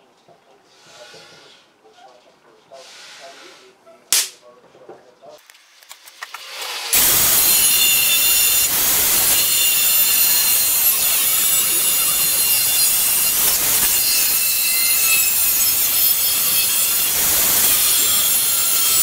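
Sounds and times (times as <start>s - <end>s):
angle grinder cutting steel: 6.4s - 19.0s.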